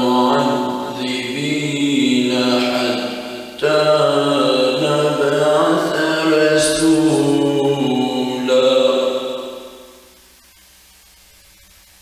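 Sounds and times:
man chanting melodic recitation: 0:00.0 - 0:09.9.

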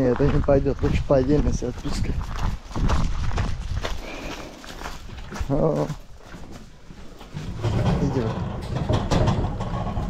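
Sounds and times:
man's voice: 0:00.0 - 0:02.2
dog paws on wooden boards: 0:00.1 - 0:07.5.

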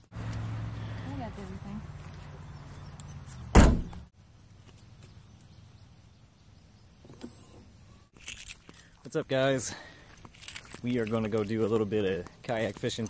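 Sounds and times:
car liftgate slamming shut: 0:03.5 - 0:04.0.

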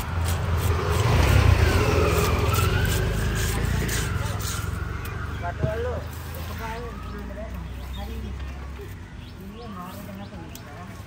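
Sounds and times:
blade scraping fish scales: 0:00.0 - 0:05.0
vehicle passing by: 0:00.0 - 0:10.2.

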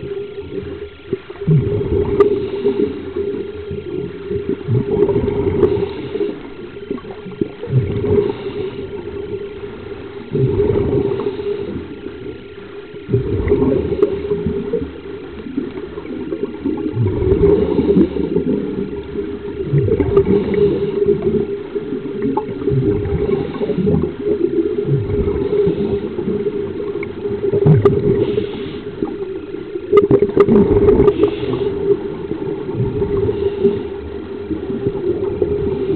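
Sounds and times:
gurgling exhaled bubbles: 0:00.0 - 0:35.9
faint hiss of inhalation: 0:05.7 - 0:06.6, 0:08.2 - 0:09.1, 0:11.0 - 0:12.1, 0:20.3 - 0:21.3, 0:28.2 - 0:29.2, 0:31.1 - 0:32.0, 0:33.2 - 0:34.1.

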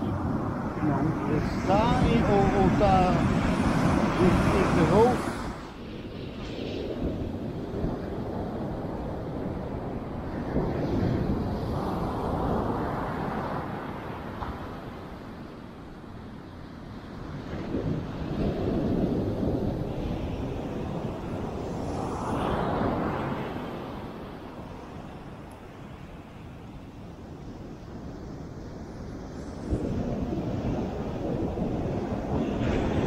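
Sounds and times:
surf breaking on beach: 0:00.0 - 0:15.7, 0:17.0 - 0:33.0
wind buffeting microphone: 0:00.0 - 0:33.0.

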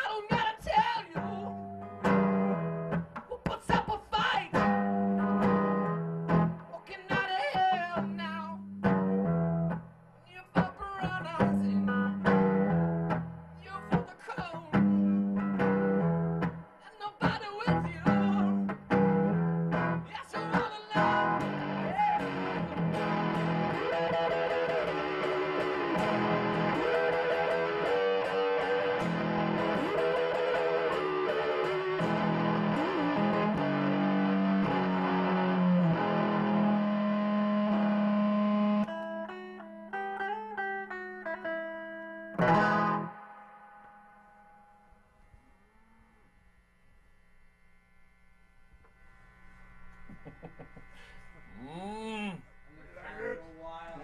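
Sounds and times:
slide guitar through amplifier: 0:00.0 - 0:46.6.

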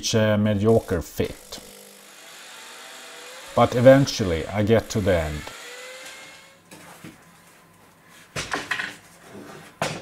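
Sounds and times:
power drill motor: 0:00.7 - 0:06.6.

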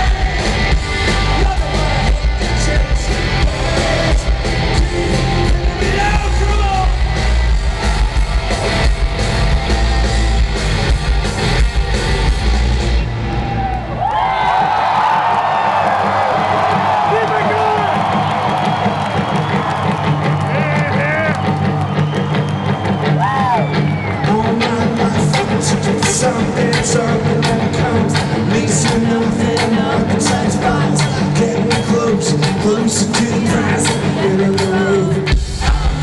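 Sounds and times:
crowd yelling and whooping: 0:00.0 - 0:10.8, 0:12.8 - 0:26.4
bass: 0:00.0 - 0:36.0
distorted guitars: 0:00.0 - 0:36.0
drums: 0:00.0 - 0:36.0.

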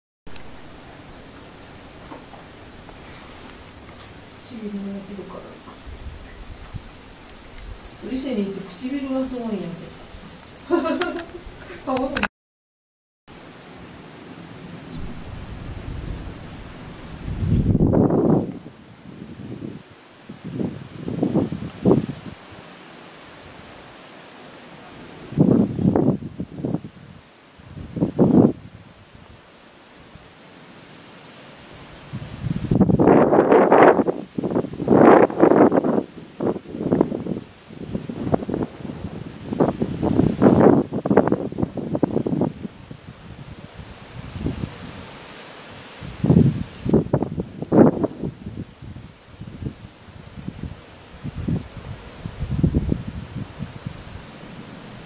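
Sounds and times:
low hiss: 0:00.3 - 0:12.2, 0:13.3 - 0:55.0
wind buffeting microphone: 0:00.3 - 0:12.2, 0:14.5 - 0:22.4, 0:25.2 - 0:29.3, 0:32.0 - 0:45.1, 0:46.0 - 0:55.0.

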